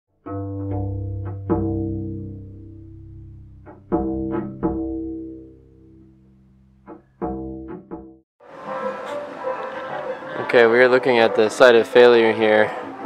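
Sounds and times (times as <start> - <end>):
plucked string notes: 0.1 - 11.1
held low bowed string: 0.3 - 6.2.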